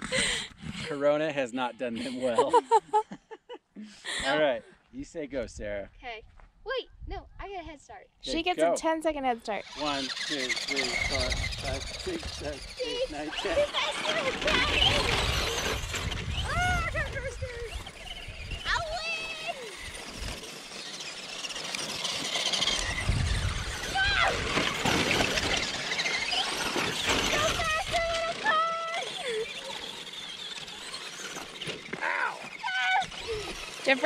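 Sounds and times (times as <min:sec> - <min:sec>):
rc trucks racing over dirt: 0:00.0 - 0:02.5, 0:09.2 - 0:34.0
children shrieking and shouting: 0:10.0 - 0:33.9
wind rumble on microphone: 0:11.1 - 0:12.8, 0:14.5 - 0:19.0, 0:22.8 - 0:24.6.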